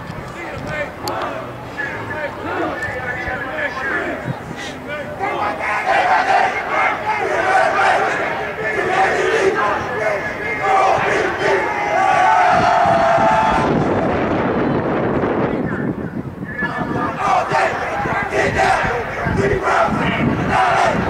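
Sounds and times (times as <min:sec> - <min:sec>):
players shouting team chant: 0:00.4 - 0:14.0, 0:16.5 - 0:21.0
long drawn-out shout: 0:01.0 - 0:14.5, 0:16.6 - 0:21.0.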